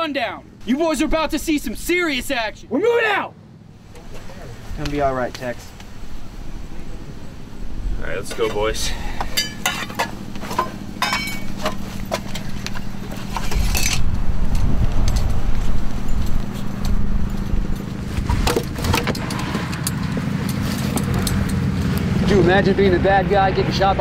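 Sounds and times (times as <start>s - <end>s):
heavy engine rumbling: 2.1s - 24.0s
metal gear clinking and rattling: 9.4s - 21.8s.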